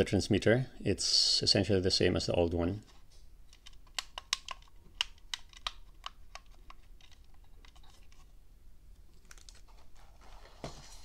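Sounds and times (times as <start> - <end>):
plastic transmitter clicks: 3.5 - 7.8.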